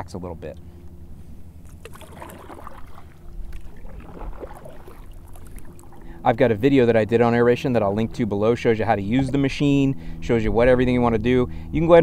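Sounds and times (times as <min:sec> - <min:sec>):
steady low hum: 0:00.0 - 0:12.0
water splashes and drips: 0:01.6 - 0:06.4
kayak paddle strokes in water: 0:01.6 - 0:06.9.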